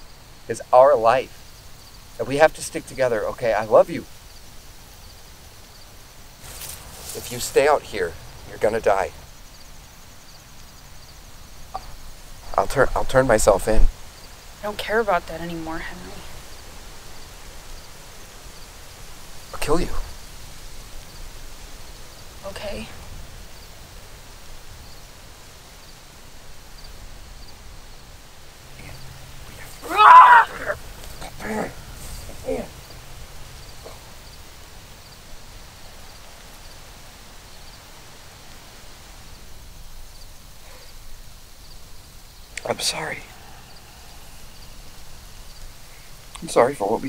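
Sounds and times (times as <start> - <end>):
wind rumbling: 0.0 - 47.0
faint rustling: 4.1 - 12.5, 15.8 - 46.6.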